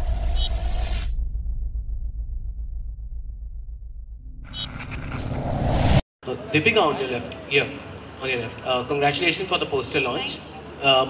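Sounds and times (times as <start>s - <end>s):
deep pulsing rumble: 0.0s - 6.0s
rising whoosh: 0.0s - 6.0s.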